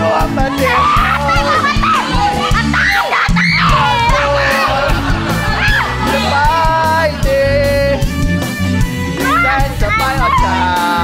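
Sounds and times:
karaoke backing music: 0:00.0 - 0:11.0
excited high-pitched voices calling out: 0:00.4 - 0:06.8, 0:09.2 - 0:10.8.

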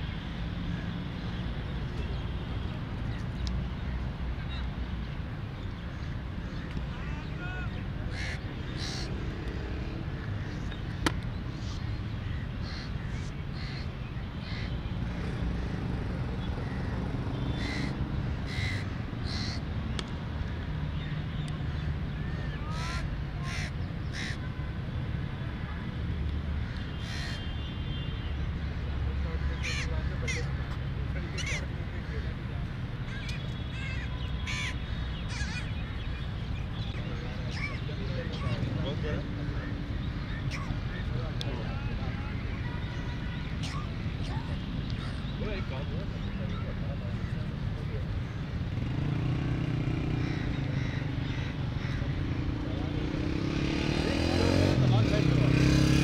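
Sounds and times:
crows cawing: 0:08.1 - 0:09.1, 0:12.3 - 0:13.8, 0:17.5 - 0:19.6, 0:22.3 - 0:24.4, 0:26.6 - 0:27.4, 0:29.4 - 0:30.5, 0:33.1 - 0:35.7, 0:50.2 - 0:52.1.

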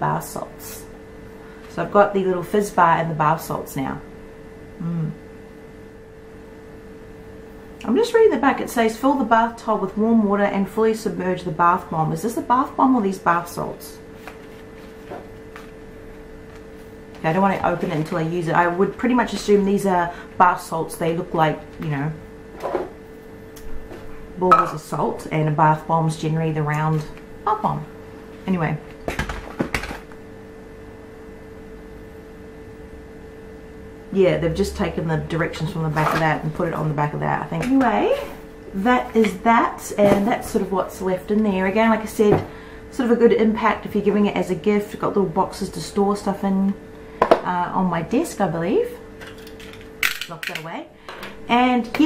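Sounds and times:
steady background hum: 0:00.0 - 0:52.0
woman humming mm: 0:04.7 - 0:05.3.

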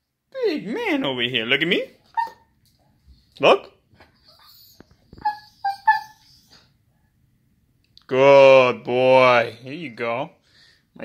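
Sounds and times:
dog whining: 0:02.1 - 0:02.5, 0:04.2 - 0:06.8.

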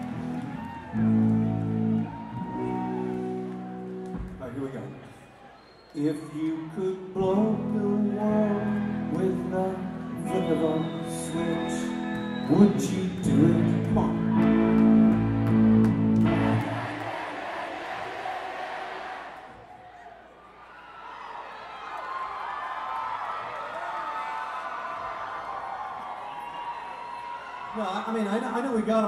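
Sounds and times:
audience cheering and shouting: 0:00.0 - 0:29.0
rock band holding a chord: 0:14.6 - 0:17.6.

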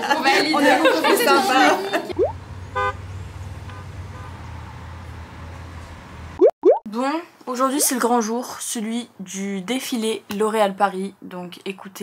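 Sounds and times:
car horn honk: 0:02.7 - 0:03.0.

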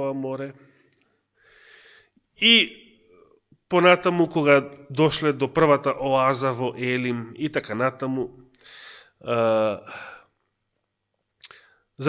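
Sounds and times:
man speaking into a microphone: 0:00.0 - 0:00.6, 0:02.4 - 0:02.8, 0:03.7 - 0:08.4, 0:09.2 - 0:10.1
brief breath: 0:01.4 - 0:02.2, 0:08.6 - 0:09.2.

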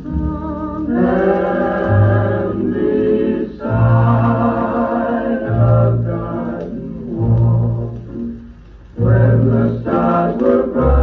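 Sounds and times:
vocal group singing harmony: 0:00.0 - 0:08.4, 0:09.0 - 0:11.0
big band record playing: 0:00.0 - 0:11.0.

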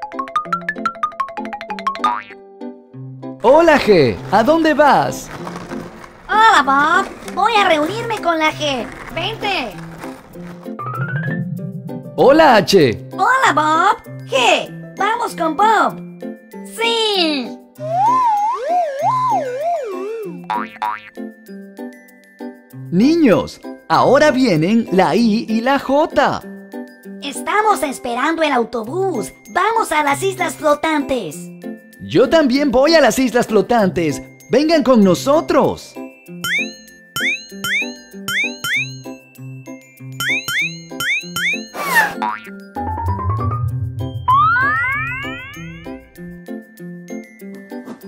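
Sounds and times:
bouncy children's music: 0:00.0 - 0:48.0
springy boing sound effects: 0:00.4 - 0:02.4, 0:20.5 - 0:21.2, 0:40.2 - 0:46.0
sliding whistle tone: 0:17.8 - 0:20.4
rising zips: 0:41.7 - 0:42.2.

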